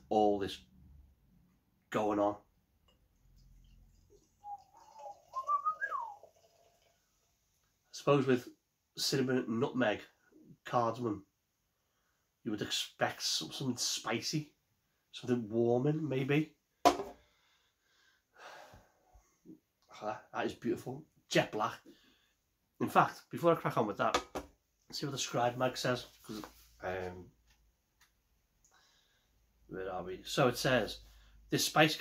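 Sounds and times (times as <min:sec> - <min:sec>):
beer glugging into a glass: 0:03.4 - 0:07.1.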